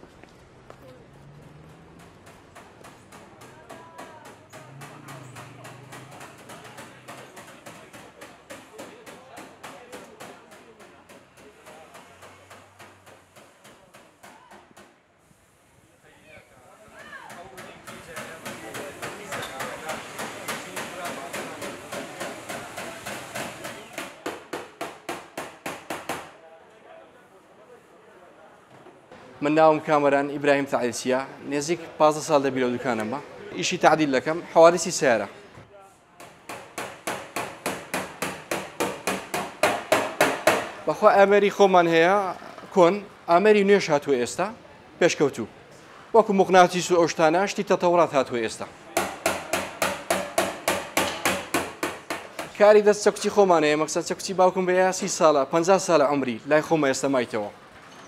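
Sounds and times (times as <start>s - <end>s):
hammer knocking on metal: 1.9s - 14.9s, 17.3s - 26.3s, 36.2s - 40.8s, 49.0s - 52.6s.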